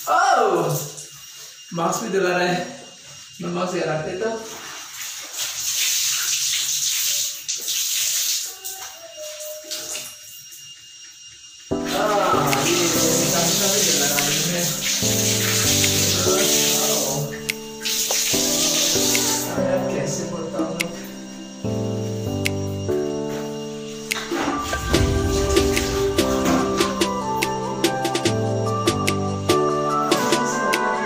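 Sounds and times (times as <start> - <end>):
water running and splashing: 0.0 - 10.8, 11.7 - 29.1
music: 11.7 - 31.0.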